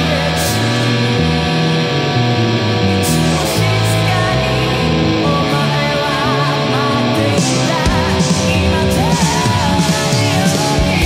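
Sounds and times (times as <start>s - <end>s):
distorted electric guitar chords: 0.0s - 11.0s
rock band backing track: 0.0s - 11.0s.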